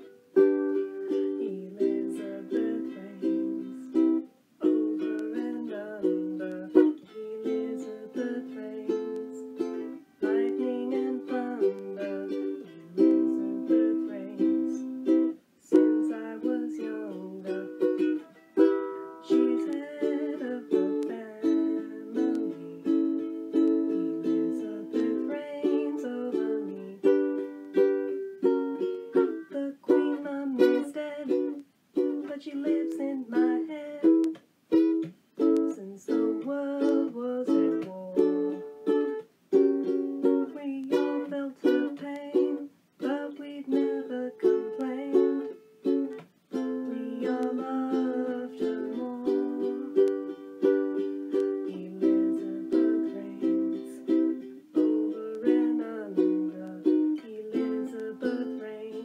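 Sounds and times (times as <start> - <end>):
ukulele strumming: 0.0 - 59.0.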